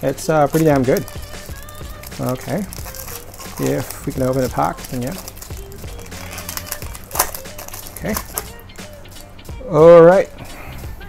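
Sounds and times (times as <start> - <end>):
foil wrapper crinkling and tearing: 0.2 - 9.2
sharp foil crackle: 0.3 - 8.6.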